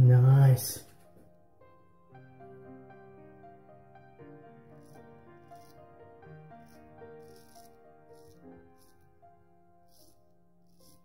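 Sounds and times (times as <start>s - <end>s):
soft music with held notes: 0.8s - 11.0s
straight razor scraping stubble: 4.8s - 5.9s, 6.6s - 9.1s, 9.9s - 11.0s.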